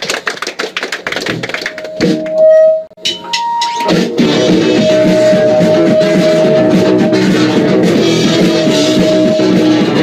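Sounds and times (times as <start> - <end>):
electric guitar note ringing: 2.0 - 10.0.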